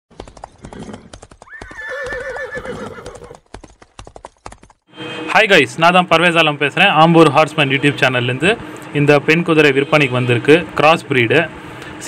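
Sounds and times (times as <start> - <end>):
horse hooves galloping: 0.1 - 4.8
horse whinnying: 0.6 - 3.4.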